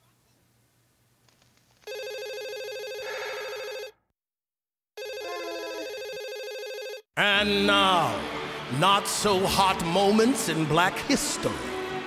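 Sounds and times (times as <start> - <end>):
desk telephone ringing: 1.9 - 4.0, 5.0 - 7.1.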